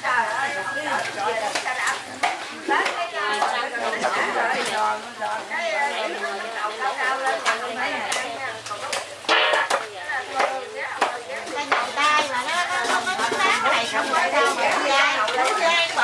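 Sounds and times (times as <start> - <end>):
people chattering: 0.0 - 16.0
food preparation clicks and knocks: 7.5 - 12.0.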